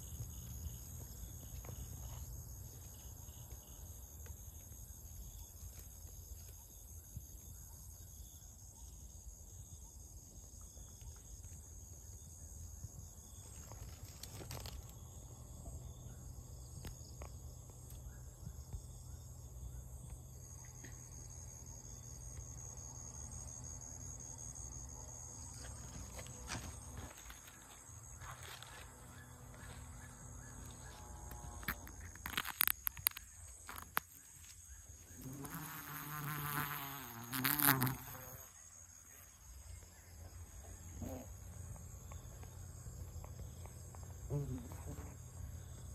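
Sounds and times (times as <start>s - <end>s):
high-pitched insect trill: 0.0s - 45.9s
wasps buzzing: 35.2s - 38.5s.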